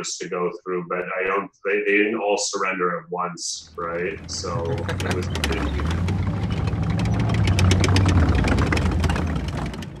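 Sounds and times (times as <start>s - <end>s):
low rumble: 3.6s - 10.0s.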